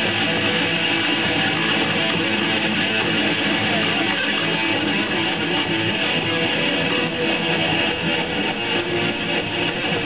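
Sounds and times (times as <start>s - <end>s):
electric guitars strumming: 0.0s - 10.0s
metal band playing: 0.0s - 10.0s.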